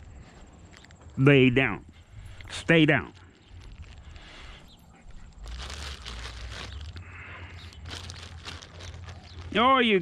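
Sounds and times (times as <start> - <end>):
plastic bag crinkling: 3.1 - 4.3, 5.3 - 10.0.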